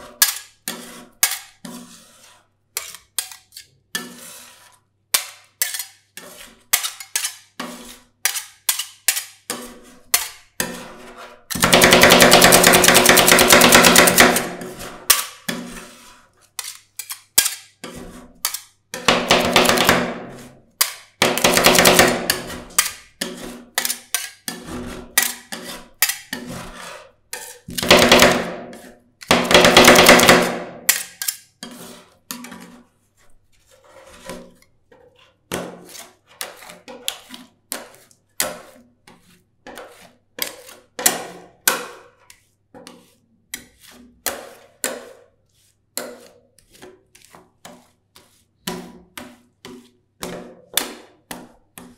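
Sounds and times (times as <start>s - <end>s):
metal spatulas chopping: 0.0s - 1.9s, 2.8s - 4.3s, 5.1s - 16.0s, 16.6s - 32.8s, 35.5s - 45.3s.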